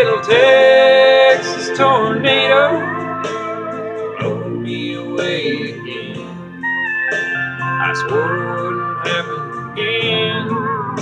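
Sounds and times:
country music instrumental: 0.0s - 11.0s
steel guitar sliding notes: 0.0s - 11.0s.

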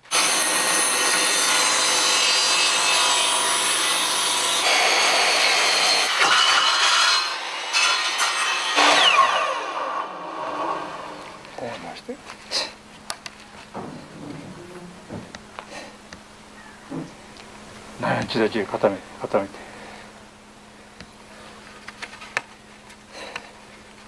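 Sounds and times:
saw rasping through wood: 0.1s - 11.3s.

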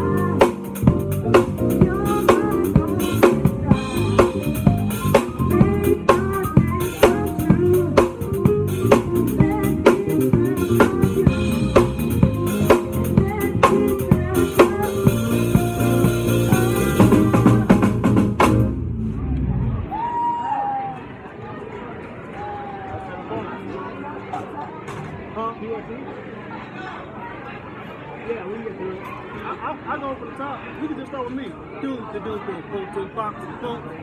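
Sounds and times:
drum kit beat: 0.0s - 18.9s
live band music: 0.0s - 19.9s.

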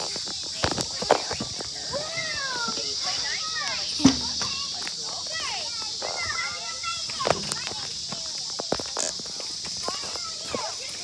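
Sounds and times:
children calling out: 0.0s - 11.0s
steady high hiss: 0.0s - 11.0s.

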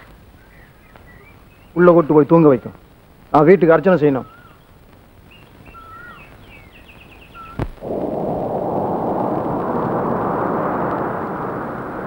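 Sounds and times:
faint birds chirping: 0.0s - 12.0s
loud rush of wind: 7.7s - 12.0s.

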